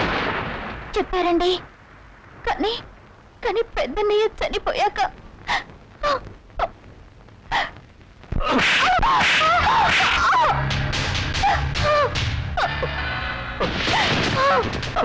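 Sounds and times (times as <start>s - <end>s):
film score music: 8.6s - 15.0s.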